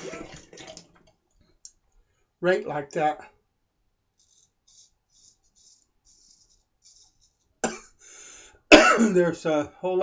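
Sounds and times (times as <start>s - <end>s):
razor scraping stubble: 4.2s - 8.0s
loud cough: 7.6s - 8.0s, 8.7s - 9.2s.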